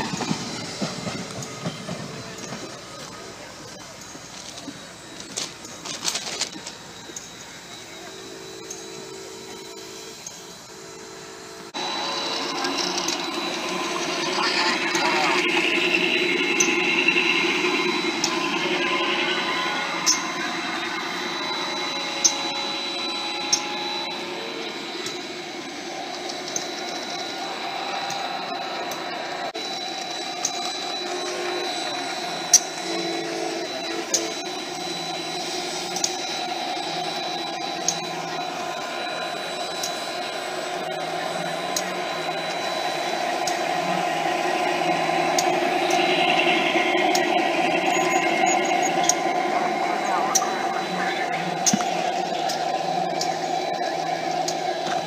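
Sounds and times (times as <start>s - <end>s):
model train motor whir: 0.0s - 55.0s.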